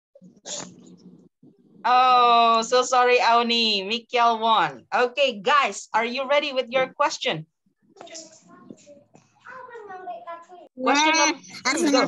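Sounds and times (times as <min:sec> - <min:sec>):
woman speaking: 0:01.9 - 0:07.4, 0:10.8 - 0:12.0.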